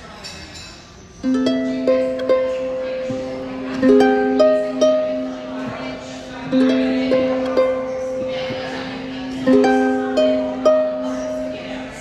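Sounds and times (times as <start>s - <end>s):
harp notes plucked: 1.2s - 12.0s.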